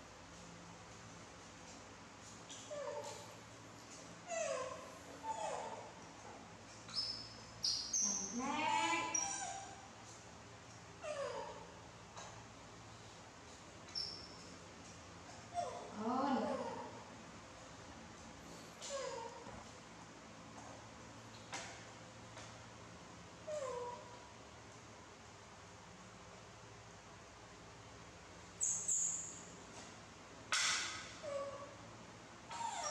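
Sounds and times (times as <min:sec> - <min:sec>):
baby monkeys squeaking: 0:06.9 - 0:09.8, 0:13.9 - 0:14.3, 0:28.6 - 0:29.2, 0:32.5 - 0:32.9.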